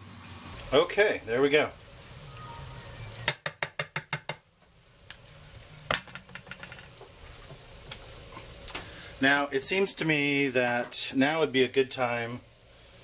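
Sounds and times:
bacon fat sizzling: 0.0 - 13.0.

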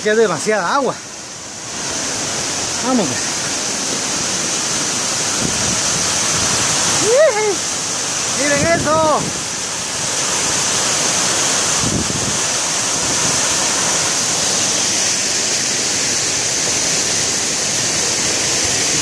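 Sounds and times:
waterfall roaring: 0.0 - 19.0.

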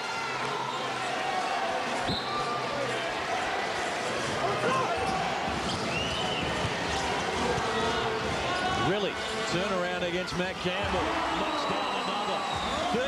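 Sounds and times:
arena crowd noise: 0.0 - 13.0.

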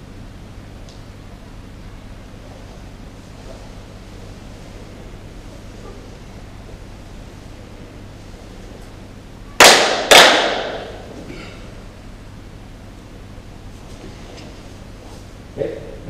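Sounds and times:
hand claps echoing in a hall: 9.6 - 11.1.

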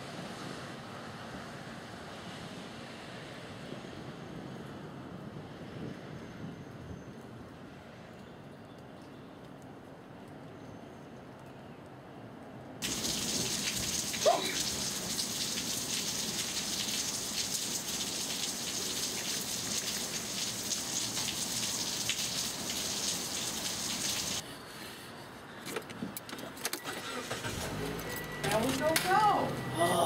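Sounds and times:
steady hiss: 12.8 - 24.4.

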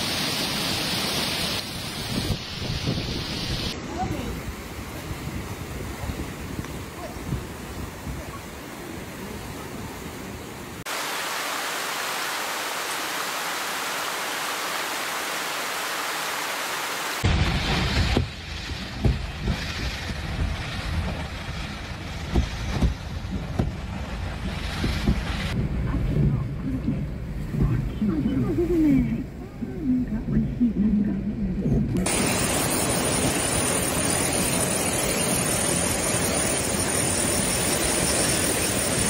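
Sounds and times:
heavy rain hissing: 0.0 - 25.6, 32.0 - 39.0
wind rumbling on microphone: 1.6 - 10.5, 17.2 - 39.0
knocks and thuds: 17.2 - 21.2, 22.2 - 26.3.

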